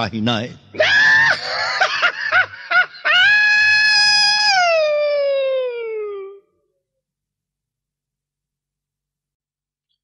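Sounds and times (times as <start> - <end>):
high-pitched comic scream: 0.8 - 1.7, 3.1 - 6.4.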